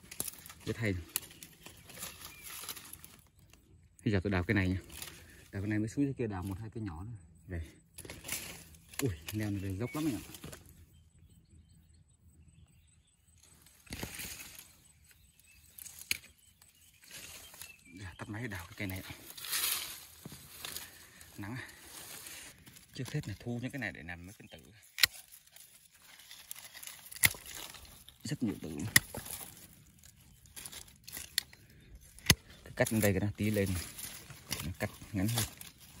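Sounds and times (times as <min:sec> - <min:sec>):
rustle of brush and leaves: 0:00.0 - 0:06.7, 0:07.7 - 0:11.0, 0:13.3 - 0:36.0.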